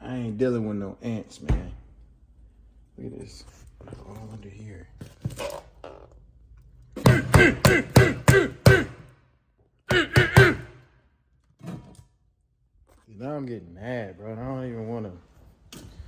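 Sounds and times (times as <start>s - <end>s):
man laughing: 7.0s - 9.0s, 9.9s - 10.7s.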